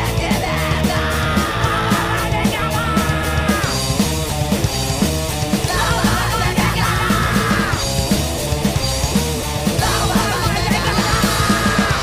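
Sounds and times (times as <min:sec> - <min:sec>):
hardcore punk song: 0:00.0 - 0:12.0.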